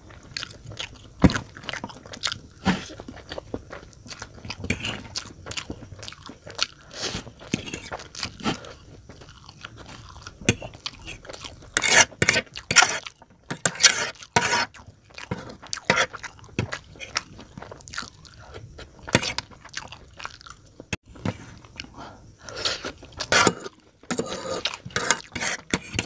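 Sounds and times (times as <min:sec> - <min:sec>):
chewing crunchy noodles: 0:00.0 - 0:26.0
metal fork scraping tray: 0:11.8 - 0:14.7, 0:23.3 - 0:26.0.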